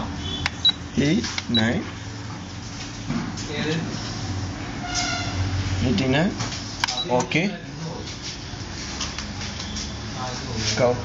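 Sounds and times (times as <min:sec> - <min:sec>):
copier humming: 0:00.0 - 0:11.0.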